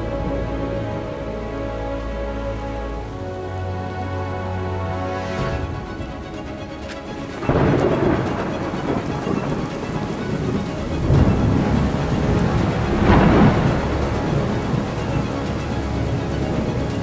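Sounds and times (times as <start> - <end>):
rain: 0.0 - 17.0
soft music: 0.0 - 17.0
thunder rumbling: 5.4 - 17.0.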